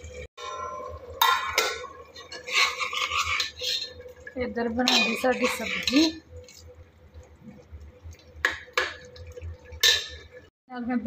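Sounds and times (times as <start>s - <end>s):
metal cookware clinks: 0.4s - 4.0s, 4.8s - 6.1s, 9.8s - 10.3s.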